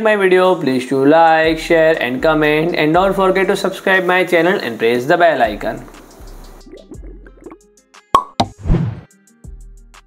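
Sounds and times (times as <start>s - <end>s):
light background music: 1.1s - 10.0s
cartoon plop pops: 6.8s - 8.7s.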